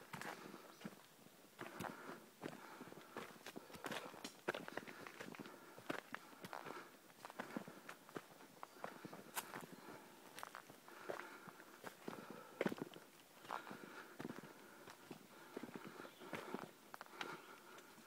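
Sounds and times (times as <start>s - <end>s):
footsteps on leafy dirt trail: 0.0s - 18.0s.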